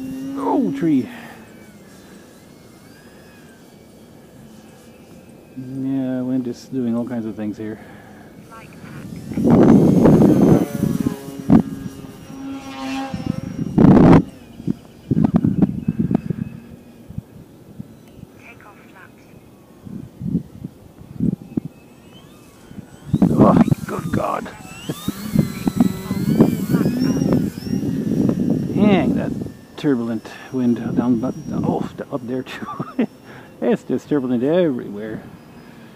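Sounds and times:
electric motor whine: 0.0 - 35.9
wind buffeting microphone: 8.8 - 18.3, 19.7 - 32.9.

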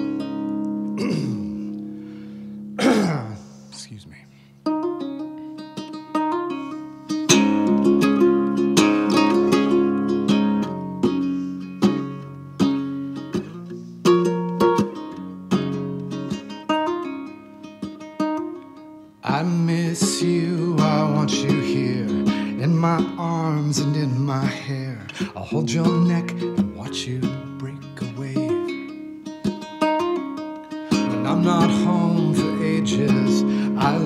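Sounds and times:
ukulele slide: 0.0 - 2.7, 4.6 - 34.0
ukulele plucked notes: 0.0 - 3.3, 4.6 - 34.0
ukulele strummed chords: 0.0 - 3.6, 4.6 - 34.0.

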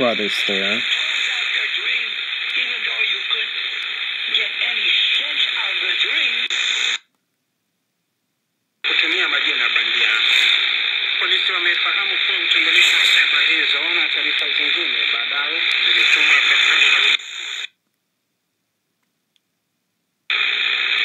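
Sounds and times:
radio speech: 0.0 - 7.0, 8.8 - 17.7
radio static hiss: 0.0 - 7.1, 8.8 - 17.8, 20.3 - 21.0.

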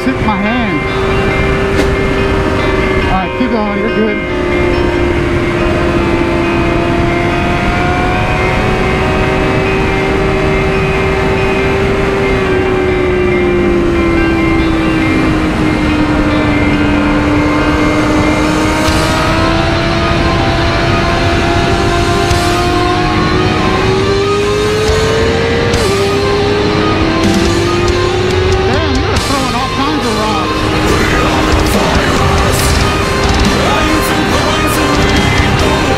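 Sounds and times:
motorcycle engine cruising: 0.0 - 35.9
wind and road noise: 0.0 - 35.9.

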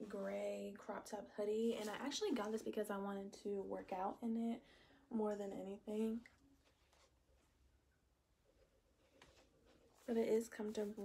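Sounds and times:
woman's voice: 0.0 - 6.3, 10.1 - 11.0.

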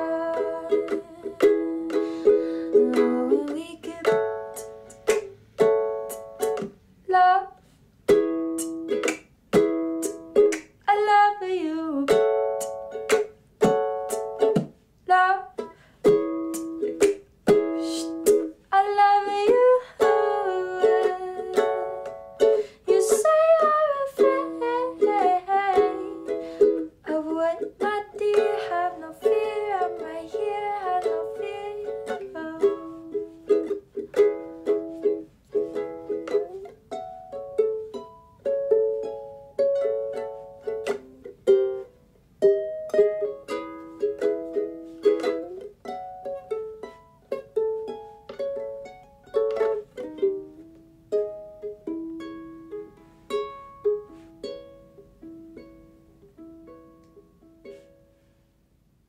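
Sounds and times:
woman singing: 0.0 - 4.7, 7.1 - 7.6, 10.8 - 12.4, 15.0 - 15.7, 17.8 - 22.1, 22.8 - 26.4, 27.0 - 33.3
ukulele strumming: 0.0 - 58.3.

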